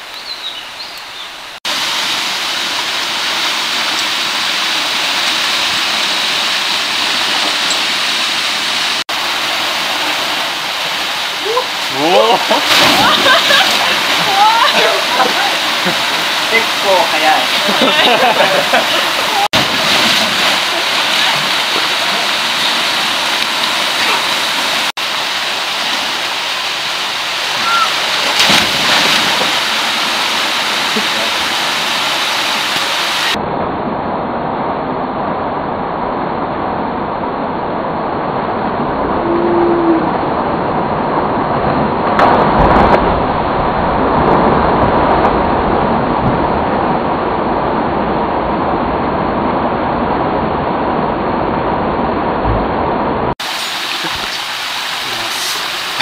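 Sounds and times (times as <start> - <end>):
waterfall rushing: 0.0 - 33.4, 52.1 - 56.0
people splashing into water: 9.7 - 25.0, 27.0 - 33.4.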